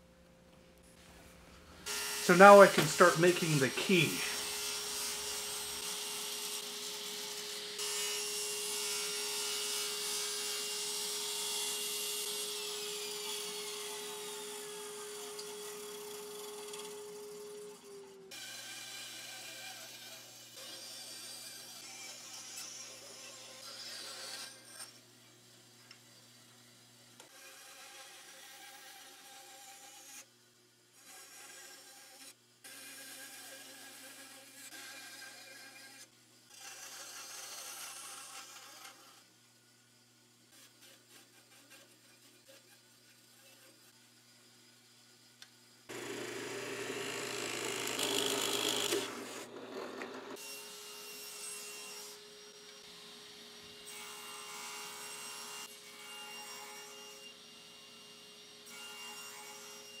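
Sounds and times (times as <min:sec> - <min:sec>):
band saw cutting: 0:01.8 - 0:25.0, 0:45.9 - 1:00.0
table saw cutting wood: 0:01.8 - 0:25.1, 0:27.3 - 0:30.3, 0:31.0 - 0:39.3, 0:45.9 - 1:00.0.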